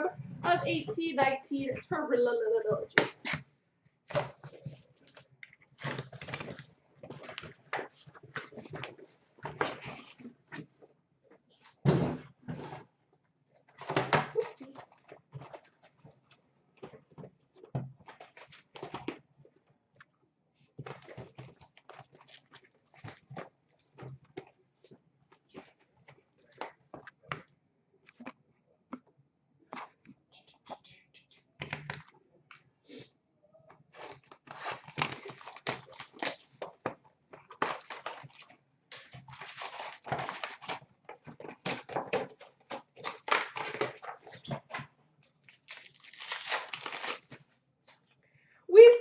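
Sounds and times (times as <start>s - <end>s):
cardboard rustling and scraping: 37.6s - 44.9s.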